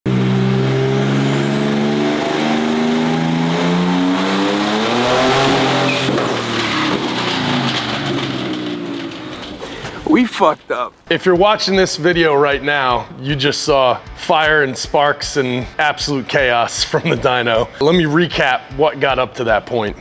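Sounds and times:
engine at full throttle: 0.1s - 9.6s
dyno rollers winding down: 0.1s - 10.5s
sharp crack of engine failing: 2.2s - 10.1s.

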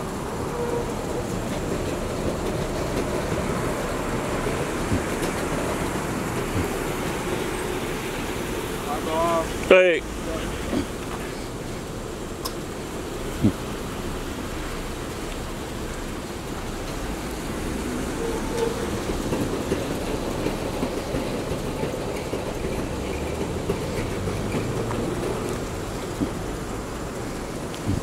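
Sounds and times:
low rumbling background noise: 0.0s - 28.0s
faint ticks: 12.4s - 12.6s.

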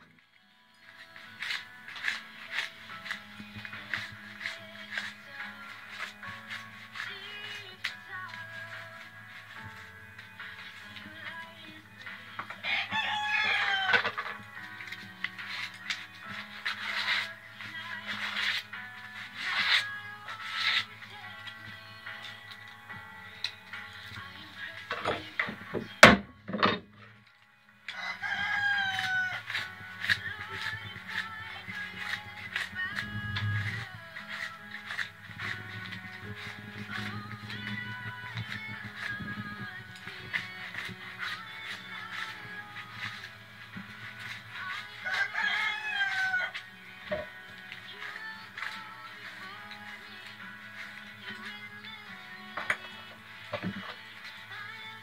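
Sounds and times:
background music: 0.0s - 55.0s
knife shaving wood: 0.8s - 26.0s, 27.8s - 55.0s
rooster crowing: 12.6s - 14.2s, 27.9s - 29.5s, 45.0s - 46.6s.

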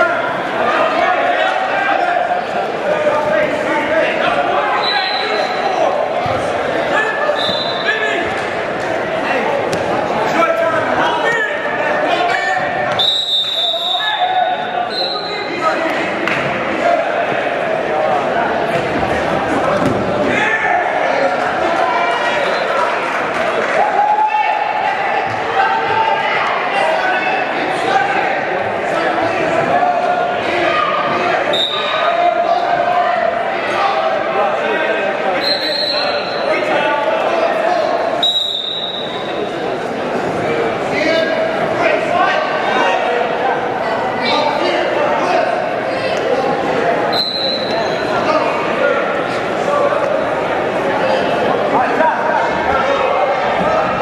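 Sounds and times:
crowd voices talking and shouting: 0.0s - 54.0s
short high whistle tones: 13.0s - 15.3s, 47.1s - 48.0s.

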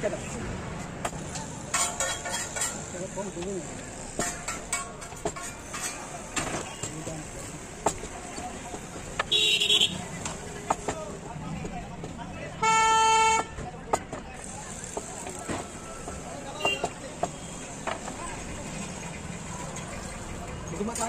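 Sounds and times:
vehicle horn: 9.3s - 10.0s.

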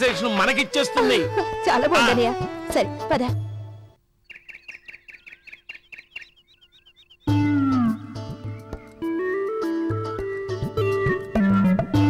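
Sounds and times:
small bird chirping: 4.2s - 9.0s.

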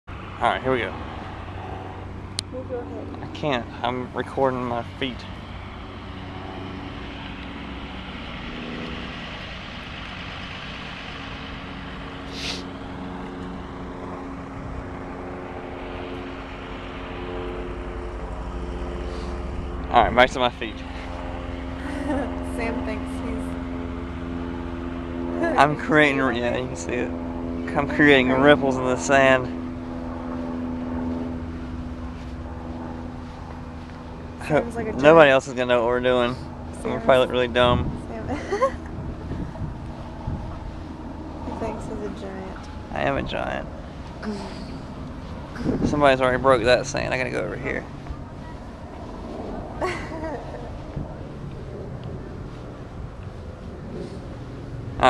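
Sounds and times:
distant engine hum: 0.0s - 55.0s
outdoor rumble: 0.0s - 55.0s
steady mechanical drone: 0.1s - 55.0s
brief hiss: 12.3s - 12.7s.

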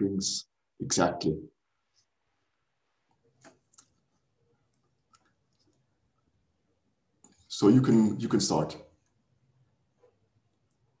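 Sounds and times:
faint clicks: 4.7s - 5.9s.

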